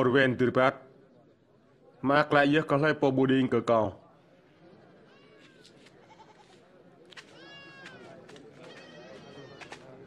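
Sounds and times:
livestock bleating: 6.0s - 6.6s.

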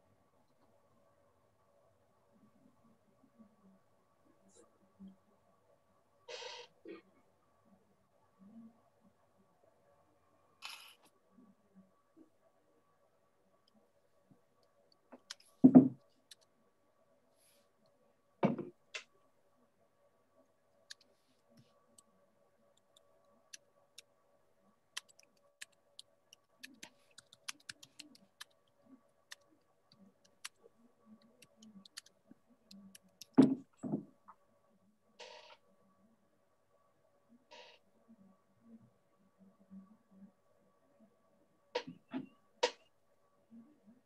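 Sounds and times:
faint steady hum: 0.0s - 44.0s.

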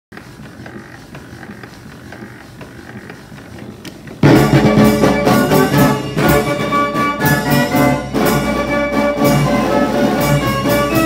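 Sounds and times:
mechanical creaking with faint clicks: 0.2s - 4.2s.

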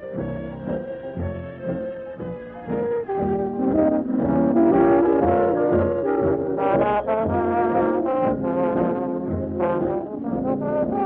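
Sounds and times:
brass band playing: 2.7s - 11.0s.

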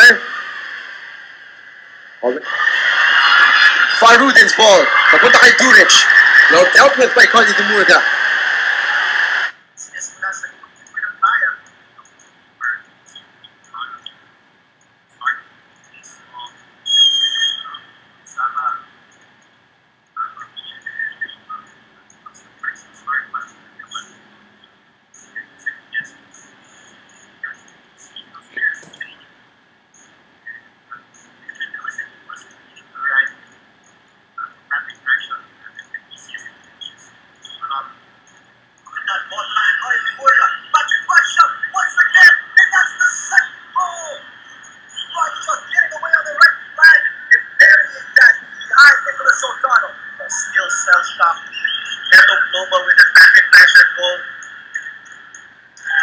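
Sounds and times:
stadium crowd noise: 2.2s - 9.5s.

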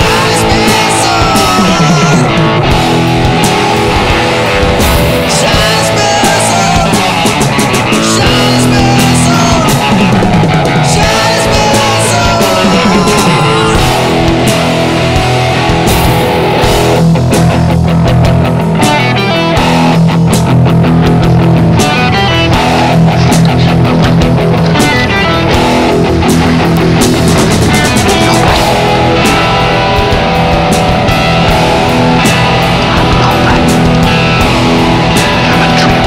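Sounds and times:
punk rock band playing: 0.0s - 36.0s.

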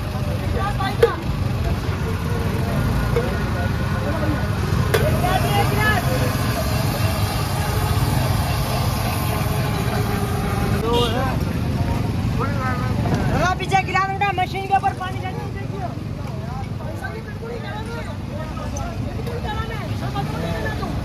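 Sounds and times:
people talking: 0.0s - 21.0s
traffic and idling engines: 0.0s - 21.0s.

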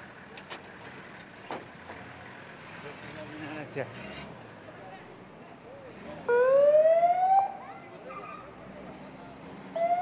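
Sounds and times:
ambulance siren whooping: 6.3s - 7.8s, 9.8s - 10.0s.

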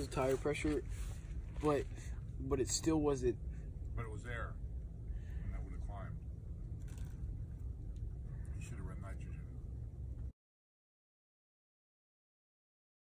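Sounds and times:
low rumble: 0.0s - 10.4s.

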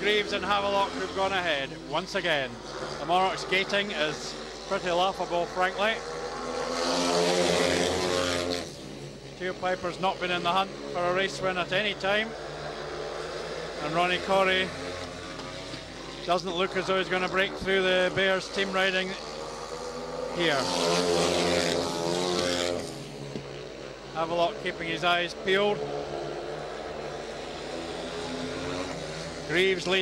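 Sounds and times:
motorcycles racing past: 0.0s - 30.0s.

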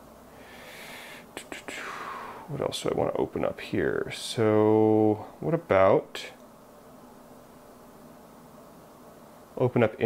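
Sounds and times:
man whispering: 1.2s - 3.5s.

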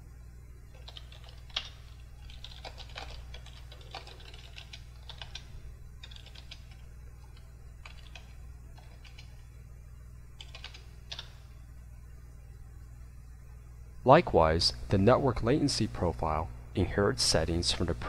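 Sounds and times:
steady low hum: 0.0s - 18.0s
computer keyboard typing: 0.7s - 9.5s, 10.4s - 11.4s.

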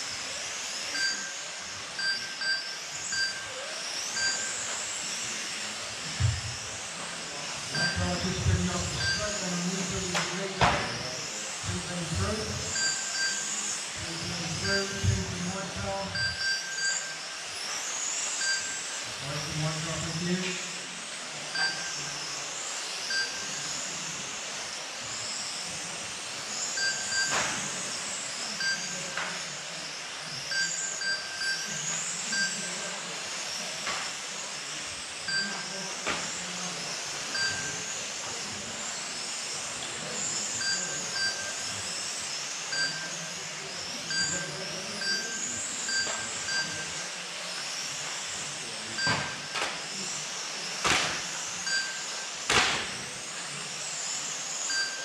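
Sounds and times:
electric motors whining: 0.0s - 55.0s
short electronic beeps: 0.9s - 1.4s, 2.0s - 4.7s, 7.8s - 8.2s, 8.9s - 9.4s, 12.7s - 13.6s, 16.1s - 17.2s, 18.4s - 18.9s, 21.6s - 21.9s, 26.8s - 27.6s, 30.5s - 31.7s, 32.3s - 32.7s, 35.3s - 35.7s, 37.3s - 37.8s, 40.6s - 41.6s, 42.7s - 43.1s, 44.1s - 47.0s, 49.0s - 49.5s, 51.7s - 52.1s, 54.7s - 55.0s.

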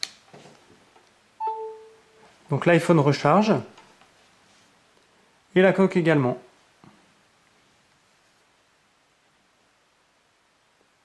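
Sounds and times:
phone charging chime: 1.4s - 2.2s.

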